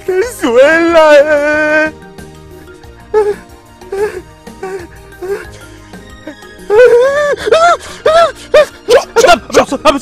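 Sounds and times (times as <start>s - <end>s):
man wailing sobs: 3.0s - 9.6s.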